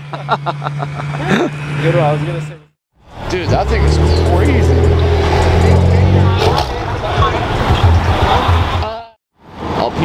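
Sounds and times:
voices: 1.3 - 9.2
car exhaust drumming: 3.0 - 8.9.

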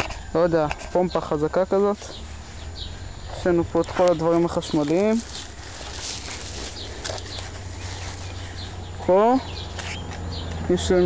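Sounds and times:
birds chirping: 0.0 - 11.0
low steady hum: 0.0 - 11.0.

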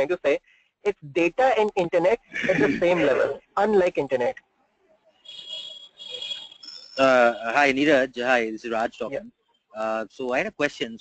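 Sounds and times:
thin high whistling tones: 5.2 - 7.6.

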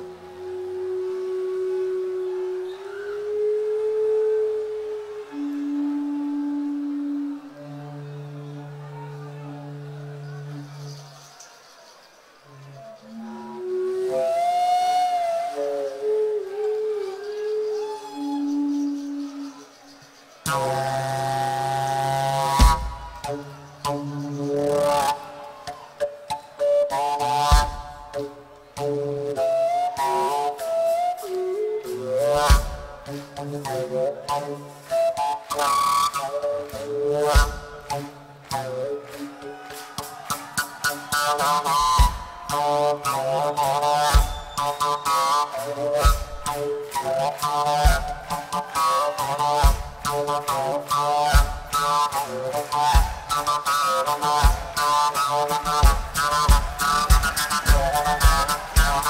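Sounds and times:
long held notes: 0.0 - 10.9, 12.5 - 19.8
folk band playing: 20.4 - 59.0.

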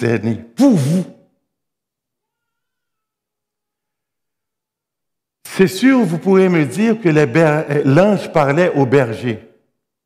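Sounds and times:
man speaking: 0.0 - 1.3, 5.4 - 9.6.

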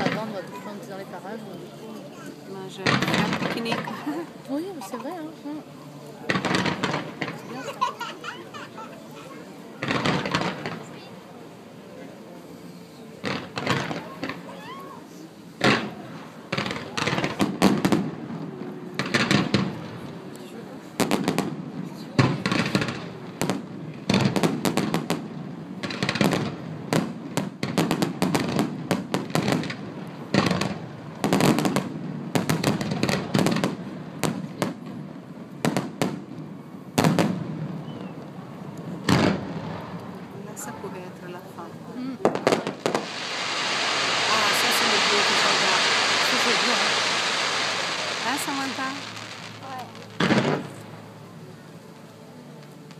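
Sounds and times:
crackling firework hiss: 6.0 - 52.9
firework shell bursts and bangs: 6.3 - 7.5, 9.8 - 10.9, 13.2 - 14.5, 42.3 - 50.8.

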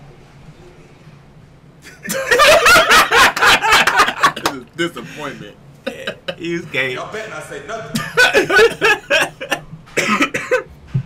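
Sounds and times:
men laughing loudly: 1.8 - 6.6, 8.0 - 10.6.

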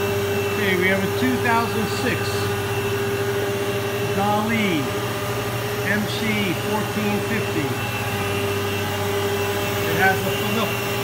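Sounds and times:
machine hum with whine: 0.0 - 11.0.

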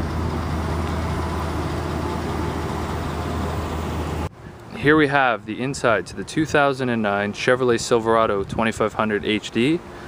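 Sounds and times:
vehicle engine hum: 0.0 - 4.8
roadway noise: 0.0 - 10.0.

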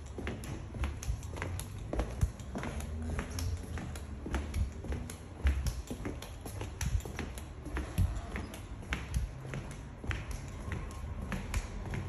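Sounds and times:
flip-flop footsteps on plank floor: 0.0 - 12.0.

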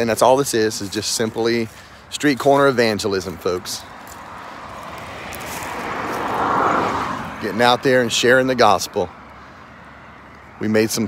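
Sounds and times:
road vehicle approaching: 0.0 - 11.0.

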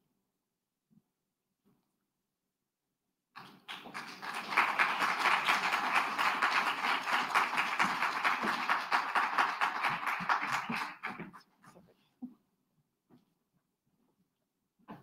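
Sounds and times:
audience applauding: 3.4 - 11.4.

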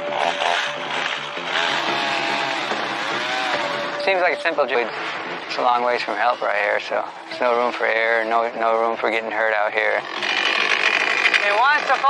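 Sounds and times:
chainsaw cutting wood: 0.0 - 4.0, 10.0 - 12.0.

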